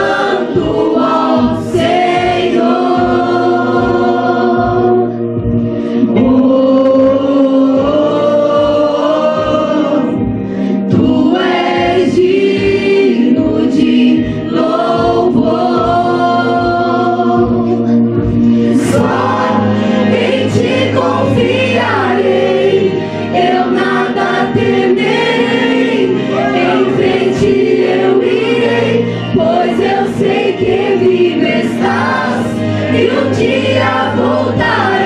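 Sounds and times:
children singing worship song: 0.0 - 35.0.

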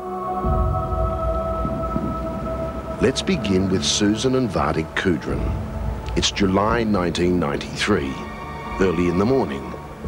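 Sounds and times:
eerie drone music: 0.0 - 10.0.

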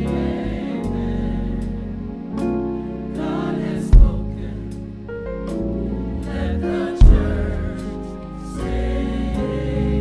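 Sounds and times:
gospel choir singing: 0.0 - 10.0
loud low thump: 3.9 - 4.4, 7.0 - 7.7.

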